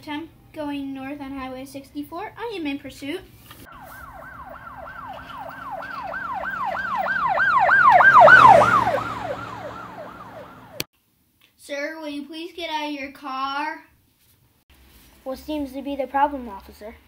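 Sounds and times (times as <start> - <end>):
police siren wailing yelp: 3.7 - 10.9.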